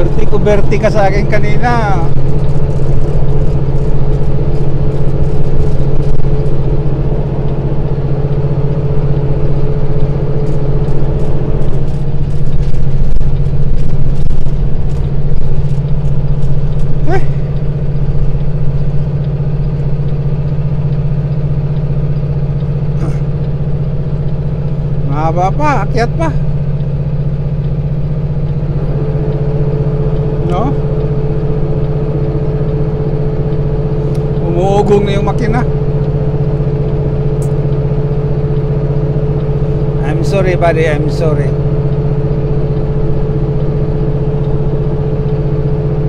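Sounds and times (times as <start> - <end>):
truck diesel engine droning: 0.0 - 46.0.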